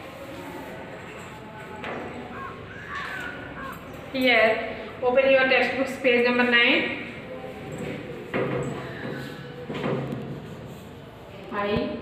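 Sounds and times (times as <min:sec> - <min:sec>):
bird calling: 0:02.2 - 0:04.2.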